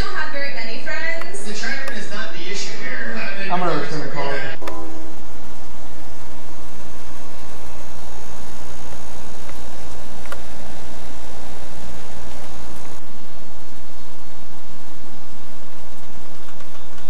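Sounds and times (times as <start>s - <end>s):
voice: 0.0s - 5.2s
low rumble with hiss: 0.0s - 17.0s.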